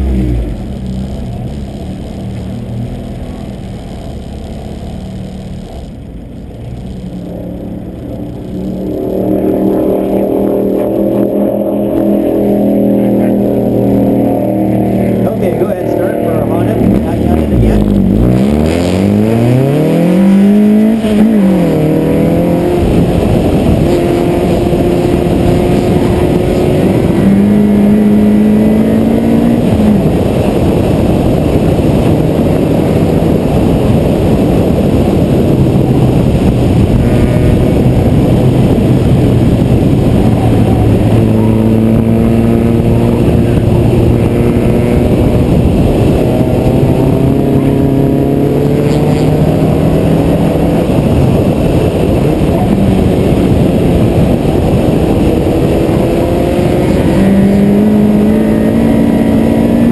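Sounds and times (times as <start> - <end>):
car engine revving: 0.0 - 59.9
wind rush on camera: 0.0 - 59.9.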